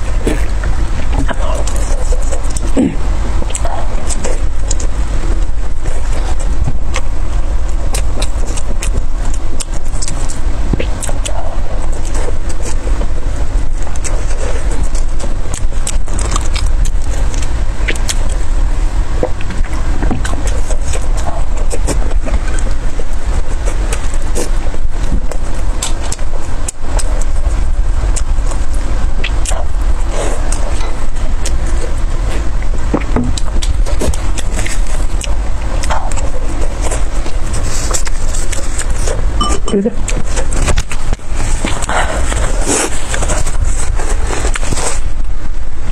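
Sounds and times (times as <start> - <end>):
close chewing: 0.0 - 45.9
loud low rumble: 0.0 - 45.9.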